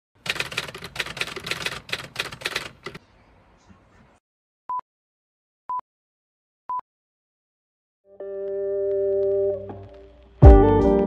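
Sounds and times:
typewriter keystroke clicks: 0.2s - 3.0s.

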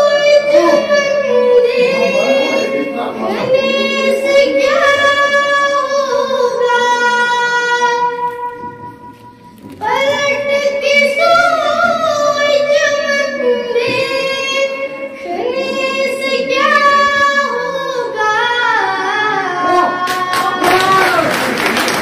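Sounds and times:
girl singing into microphone: 0.0s - 21.2s.

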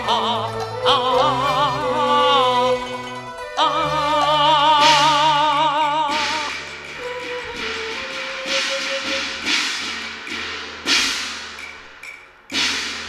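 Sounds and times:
percussion strikes ringing: 0.0s - 13.0s.

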